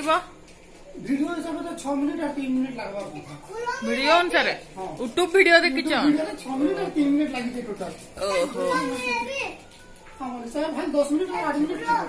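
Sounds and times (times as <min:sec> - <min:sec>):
child talking: 0:03.5 - 0:04.0, 0:08.2 - 0:09.7, 0:11.3 - 0:12.0.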